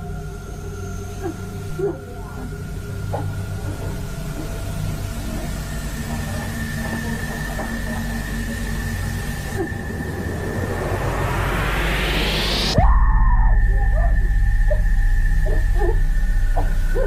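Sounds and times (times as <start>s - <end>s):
low rumbling drone: 0.0s - 17.0s.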